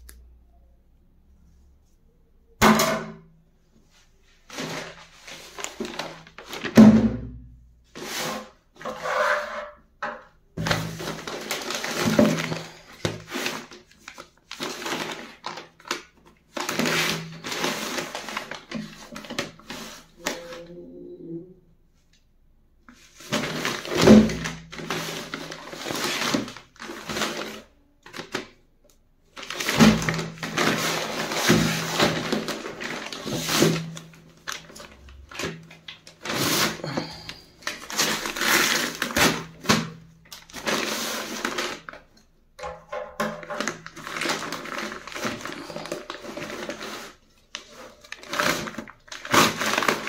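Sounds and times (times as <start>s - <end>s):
paper bag rustling: 3.9s - 7.0s, 10.6s - 20.8s, 22.9s - 28.5s, 29.3s - 42.1s, 43.2s - 50.0s.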